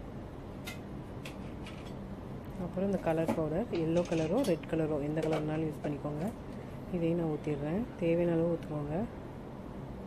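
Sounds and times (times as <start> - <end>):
steady low hum: 0.0 - 10.0
kitchen utensils clicking: 3.7 - 5.6.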